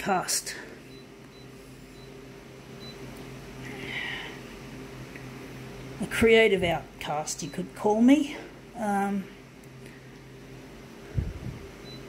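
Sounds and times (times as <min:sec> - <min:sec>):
photocopier humming: 0:00.0 - 0:12.0.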